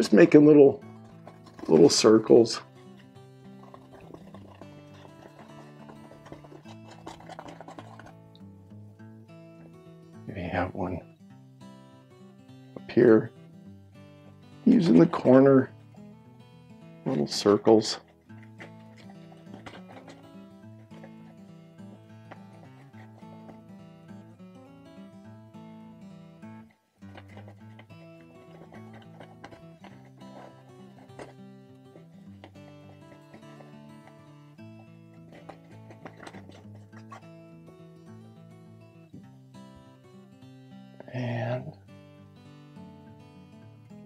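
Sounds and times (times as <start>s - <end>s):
quiet background music: 0.0s - 44.0s.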